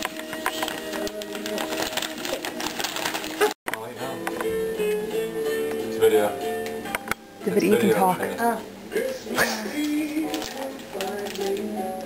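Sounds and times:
wrapping paper ripping and crinkling: 0:00.0 - 0:03.6, 0:09.4 - 0:12.0
music: 0:00.0 - 0:12.0.

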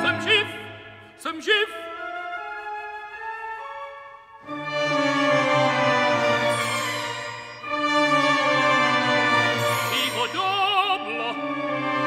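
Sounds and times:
orchestra playing sustained chords: 0:04.4 - 0:12.0.

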